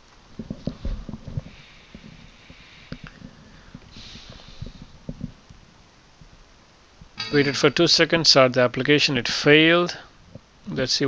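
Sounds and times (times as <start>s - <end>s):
soft breath-like hiss: 1.4s - 5.2s.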